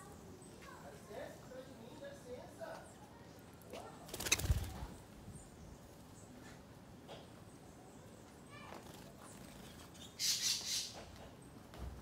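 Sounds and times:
bird wingbeats: 0:03.9 - 0:05.0.

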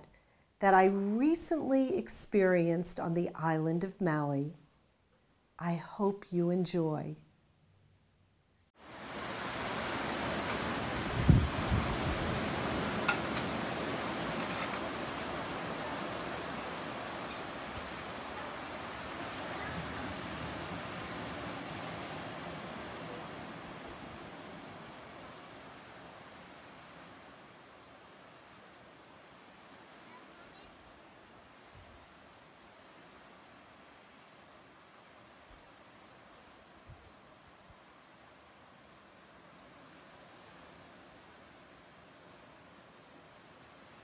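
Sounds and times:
ocean surf on a beach: 0:08.8 - 0:44.0.

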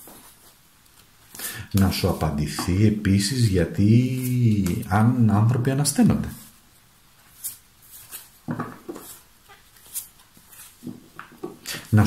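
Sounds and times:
cards being shuffled: 0:00.0 - 0:02.8, 0:07.2 - 0:11.6.

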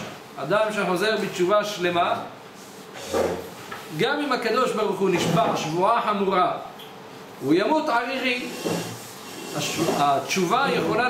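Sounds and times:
man speaking: 0:09.5 - 0:11.0.

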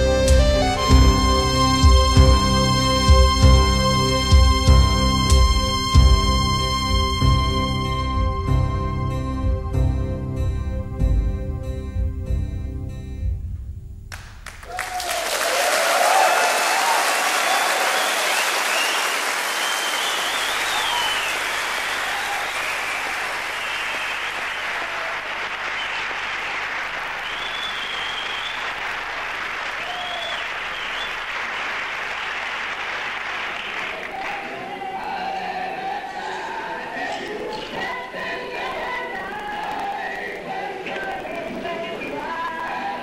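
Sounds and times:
audience applauding and cheering: 0:14.1 - 0:36.4, 0:37.0 - 0:43.0.

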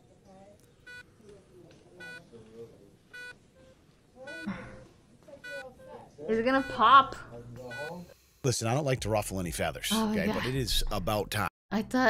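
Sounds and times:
quiet speech: 0:00.0 - 0:03.1
faint electronic beeps: 0:01.9 - 0:08.2.

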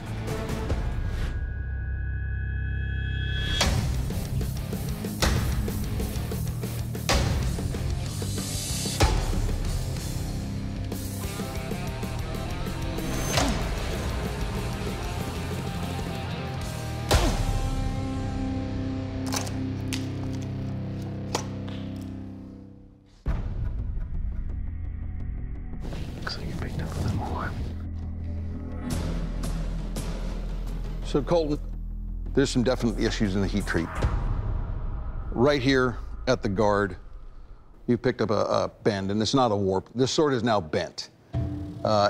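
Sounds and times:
dramatic background music: 0:00.0 - 0:37.9, 0:41.3 - 0:42.0.

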